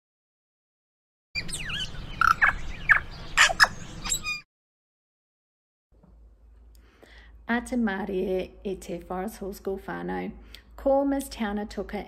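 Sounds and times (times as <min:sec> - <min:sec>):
birdsong chirps and whistles: 0:01.4 - 0:04.5.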